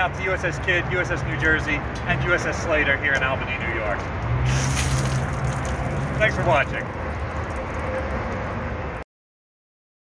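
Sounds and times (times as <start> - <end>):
low rumble of road traffic: 0.0 - 9.0.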